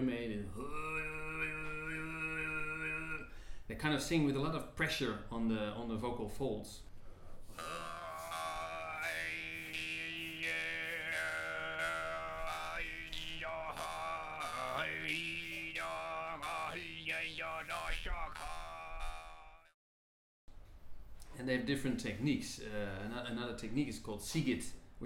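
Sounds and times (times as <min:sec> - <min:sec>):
man overtone singing: 0:00.0 - 0:03.4, 0:07.5 - 0:19.7.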